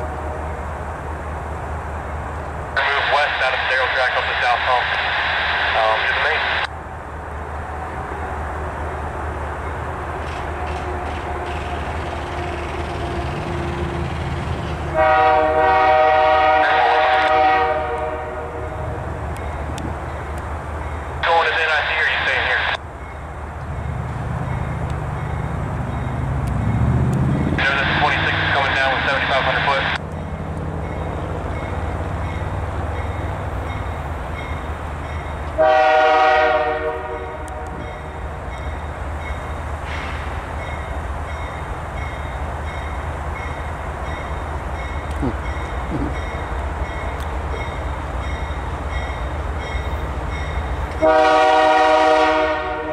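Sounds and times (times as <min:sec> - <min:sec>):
train air horn blasts: 0:00.0 - 0:00.6, 0:14.9 - 0:18.8, 0:35.6 - 0:37.9, 0:51.0 - 0:52.9.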